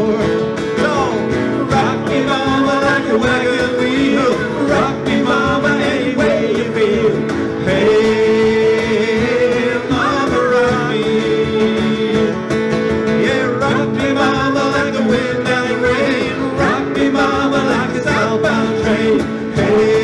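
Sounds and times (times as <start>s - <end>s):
person singing: 0.0s - 12.5s, 13.1s - 20.0s
cajon beat: 0.0s - 20.0s
strummed acoustic guitars: 0.0s - 20.0s.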